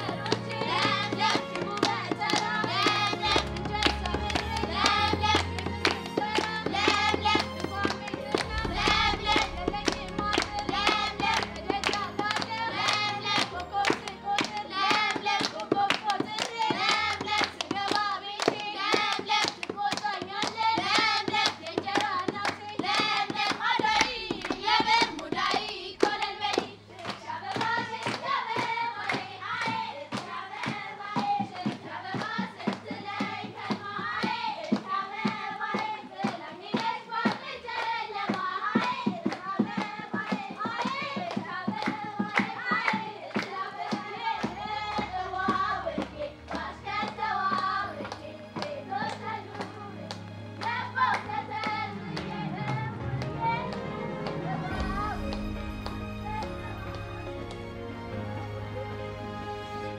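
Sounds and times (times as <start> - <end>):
children singing: 0.0 - 57.0
rhythmic hand clapping: 0.0 - 57.8.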